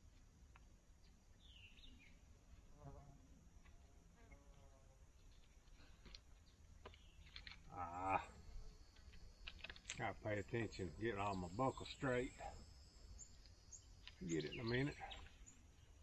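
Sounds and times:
climbing gear clicks and rattles: 0:05.3 - 0:07.7, 0:08.9 - 0:10.0.

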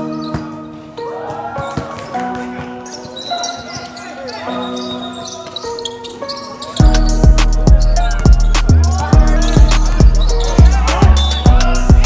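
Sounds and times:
background music with held notes: 0:00.0 - 0:12.0
heavy bass beat: 0:06.8 - 0:12.0.

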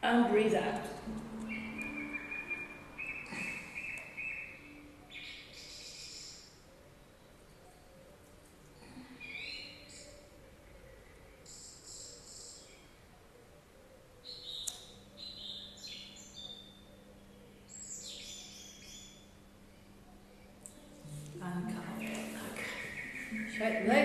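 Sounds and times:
faint birdsong chirping: 0:00.0 - 0:24.0.

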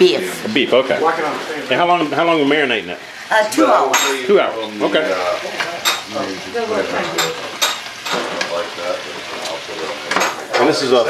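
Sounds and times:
food sizzling in a pan: 0:00.0 - 0:11.0.

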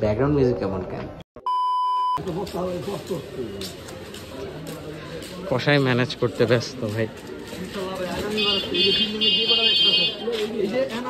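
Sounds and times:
high censor beep: 0:01.4 - 0:02.2.

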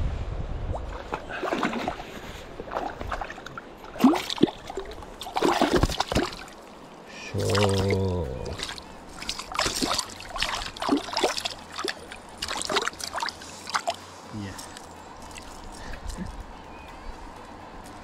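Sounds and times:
running river water: 0:00.2 - 0:18.0
water splashing and sloshing: 0:00.7 - 0:16.6.

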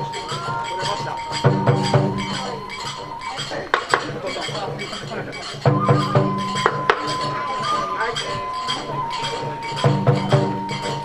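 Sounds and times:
held flute note: 0:00.0 - 0:04.8, 0:05.6 - 0:11.0
hand cymbals ringing: 0:00.0 - 0:11.0
sharp wooden clacks: 0:00.0 - 0:11.0.

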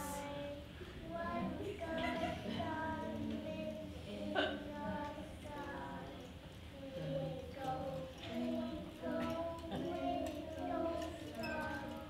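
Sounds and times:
high voices singing: 0:00.0 - 0:12.0.

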